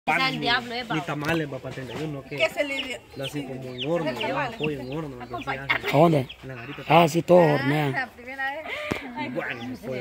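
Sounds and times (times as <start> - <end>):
chickens clucking: 0.2 - 10.0.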